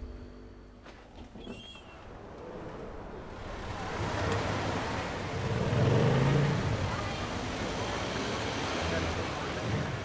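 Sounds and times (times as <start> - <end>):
road noise: 1.9 - 10.0
voices: 2.4 - 10.0
motor vehicle passing: 2.6 - 10.0.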